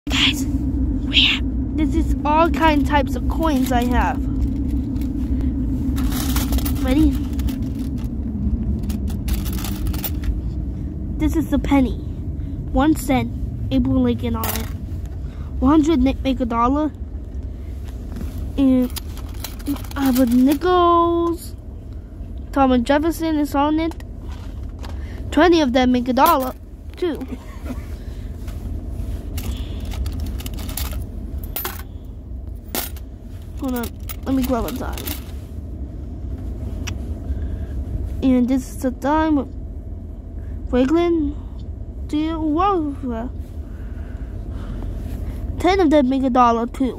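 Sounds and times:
steady low rumble: 0.0 - 46.9.

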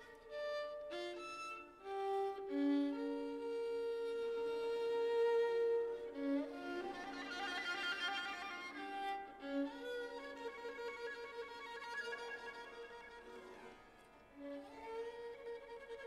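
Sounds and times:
solo violin: 0.0 - 16.0.

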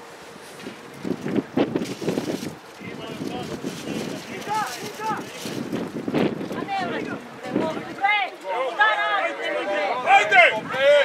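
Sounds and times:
wind noise on microphone: 0.5 - 8.1, 10.4 - 11.0
people shouting: 8.0 - 11.0.

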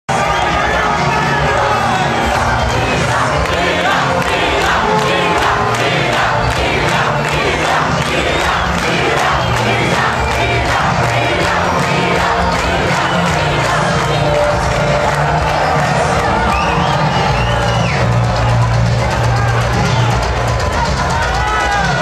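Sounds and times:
crowd shouting and cheering: 0.1 - 22.0
fast regular beat: 0.2 - 22.0.

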